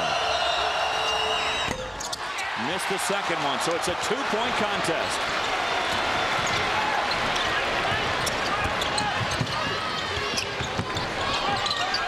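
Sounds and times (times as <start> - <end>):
arena crowd din: 0.0 - 12.0
sneaker squeaks: 8.2 - 12.0.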